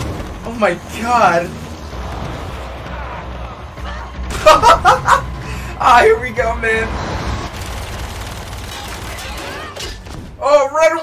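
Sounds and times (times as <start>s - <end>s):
action soundtrack noise: 0.0s - 10.8s.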